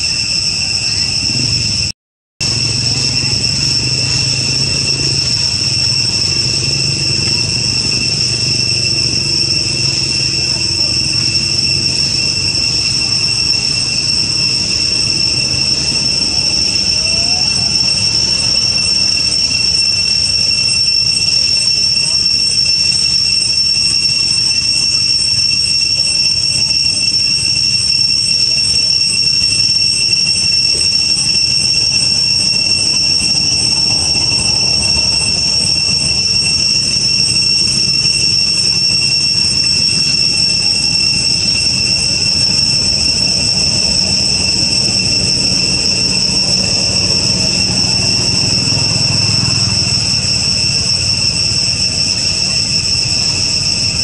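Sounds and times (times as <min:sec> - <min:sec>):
cicadas droning: 0:00.0 - 0:54.0.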